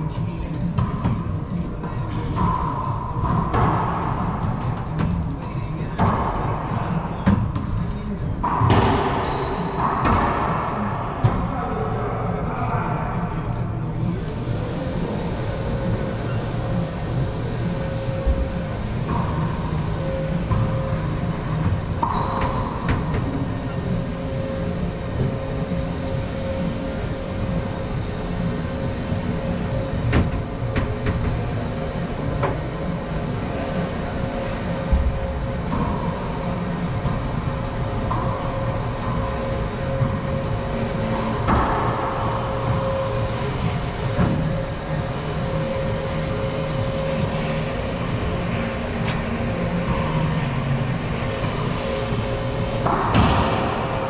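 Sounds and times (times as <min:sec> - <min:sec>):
low mechanical drone: 0:00.0 - 0:54.0.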